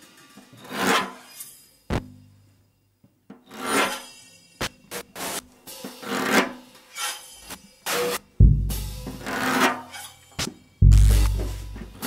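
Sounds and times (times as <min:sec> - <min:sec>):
scraping across a drum or cymbal: 0:00.0 - 0:02.0, 0:03.4 - 0:12.0.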